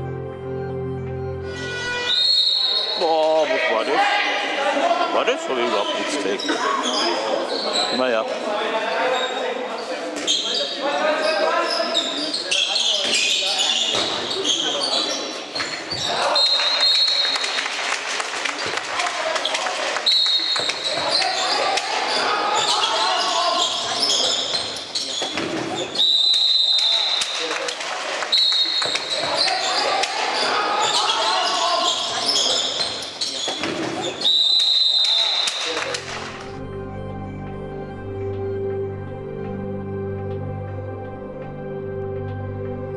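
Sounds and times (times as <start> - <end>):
sneakers squeaking on floor: 1.5 - 3.0, 5.6 - 8.0, 9.0 - 17.4, 19.4 - 27.5, 28.2 - 36.0
players calling out: 19.3 - 38.8.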